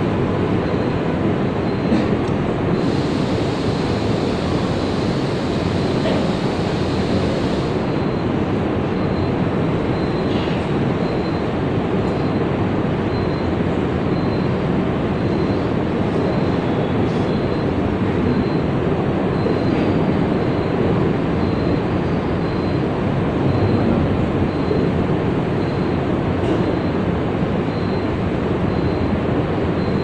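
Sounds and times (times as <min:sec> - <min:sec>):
ceiling fans running: 0:00.0 - 0:30.0.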